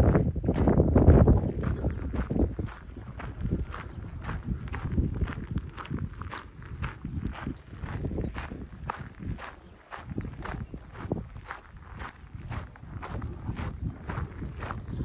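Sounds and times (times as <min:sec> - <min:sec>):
footsteps crunching on gravel: 0:00.5 - 0:15.0.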